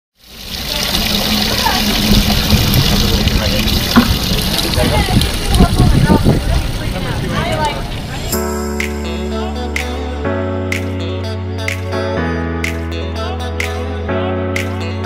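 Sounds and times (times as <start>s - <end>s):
hose water spraying into buckets: 0.2s - 8.3s
people chattering: 0.5s - 8.5s.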